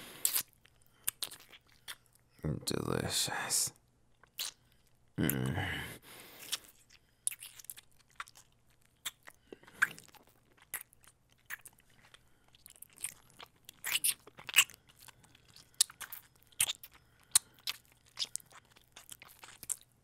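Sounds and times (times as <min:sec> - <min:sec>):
wet kissing and licking smacks: 0:00.2 - 0:00.5, 0:04.3 - 0:04.6.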